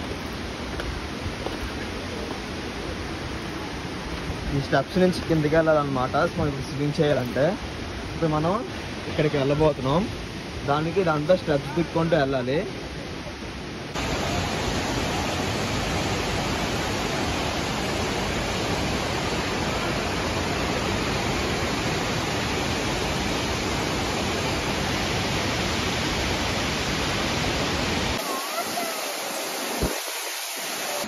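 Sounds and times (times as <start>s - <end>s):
waterfall rushing: 0.0s - 31.0s.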